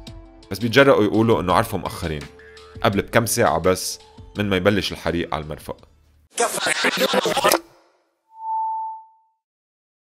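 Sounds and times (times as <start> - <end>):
steady electronic tone: 8.3 - 9.2.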